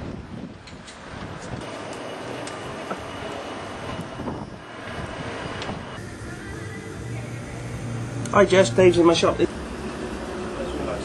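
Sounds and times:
passing traffic: 0.0s - 11.0s.

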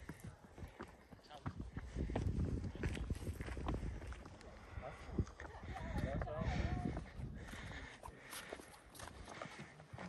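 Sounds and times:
low wind rumble: 1.6s - 7.9s.

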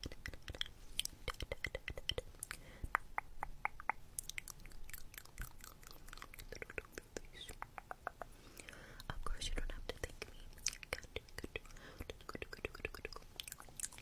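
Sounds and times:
soft whispering: 0.0s - 3.0s, 4.6s - 14.0s
wet mouth clicks and smacks: 0.0s - 9.2s, 9.9s - 14.0s.

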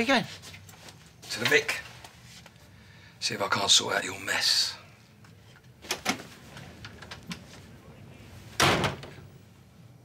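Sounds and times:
door slamming shut: 8.6s - 9.2s.

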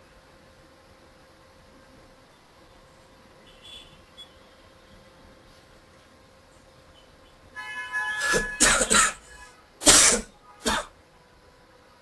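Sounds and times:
person coughing: 8.2s - 11.0s.

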